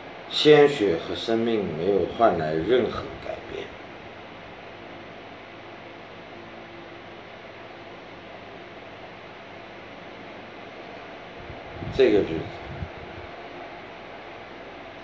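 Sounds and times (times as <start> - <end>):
faint hum: 0.0 - 15.0.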